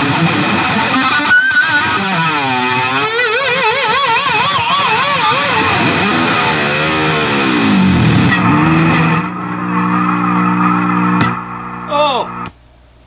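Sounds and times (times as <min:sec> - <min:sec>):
loud electric guitar with tremolo: 0:00.0 - 0:12.5.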